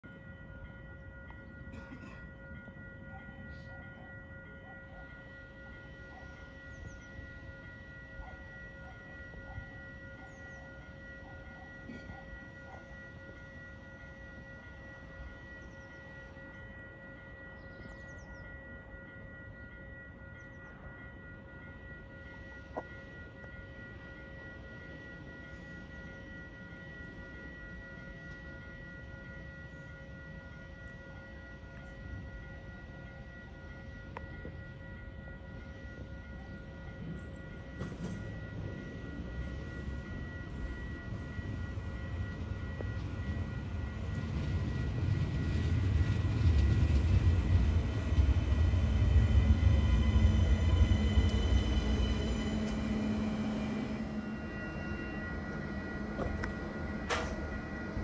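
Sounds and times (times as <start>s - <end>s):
electric train rumble and whine: 0.0s - 58.0s.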